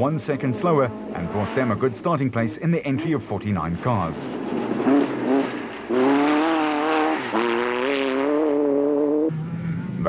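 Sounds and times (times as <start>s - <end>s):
buggy engine revving hard: 0.0s - 2.2s, 4.6s - 10.0s.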